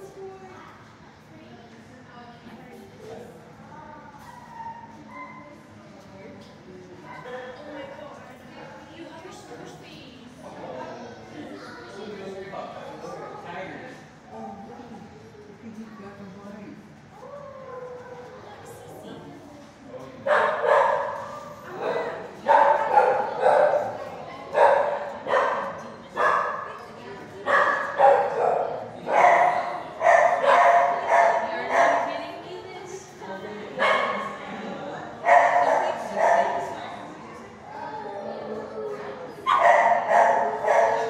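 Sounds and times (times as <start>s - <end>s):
dogs barking: 20.2s - 26.7s, 27.4s - 32.2s, 33.8s - 34.4s, 35.2s - 36.7s, 39.4s - 41.0s.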